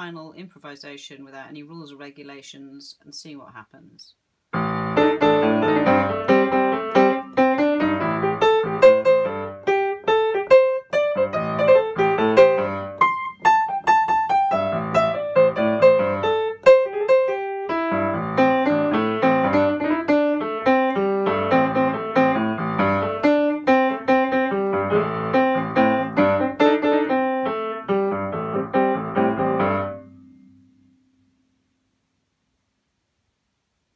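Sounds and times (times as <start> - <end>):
jazz-blues piano playing: 4.5 - 30.9.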